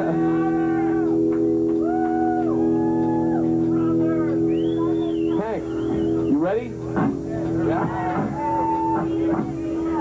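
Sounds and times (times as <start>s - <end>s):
droning amplified instruments: 0.0s - 10.0s
high held tone: 0.0s - 10.0s
voices shouting: 7.6s - 10.0s.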